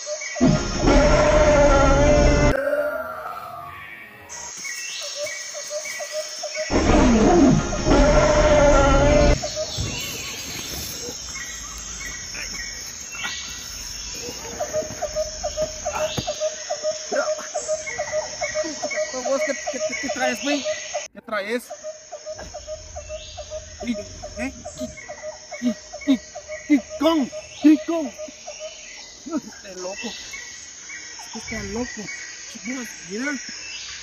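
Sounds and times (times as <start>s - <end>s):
high-pitched insect drone: 0.0s - 2.6s, 3.2s - 34.0s
loud animal roar: 0.4s - 3.8s, 6.7s - 9.4s
fast pulsing animal call: 21.8s - 28.8s.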